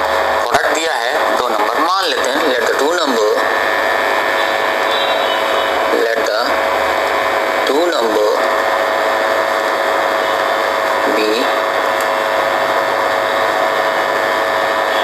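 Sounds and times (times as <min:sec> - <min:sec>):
loud steady hiss: 0:00.0 - 0:15.0
motor hum: 0:00.0 - 0:15.0
person speaking: 0:00.4 - 0:03.6, 0:10.9 - 0:11.9.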